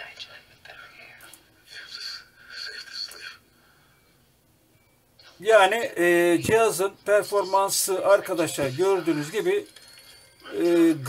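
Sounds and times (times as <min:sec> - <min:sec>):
tinny voices from laptop speakers: 0:05.2 - 0:11.0.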